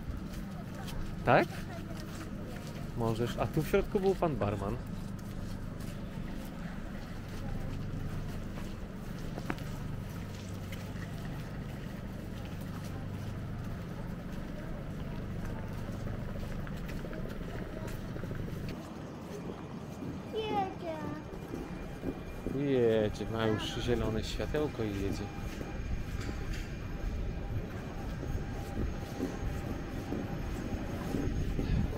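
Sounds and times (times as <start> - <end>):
electric train humming: 0.0 - 31.9.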